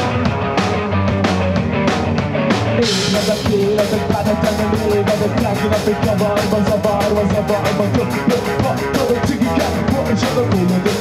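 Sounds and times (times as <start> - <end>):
bass guitar: 0.0 - 11.0
drum kit beat: 0.0 - 11.0
electric guitar: 0.0 - 11.0.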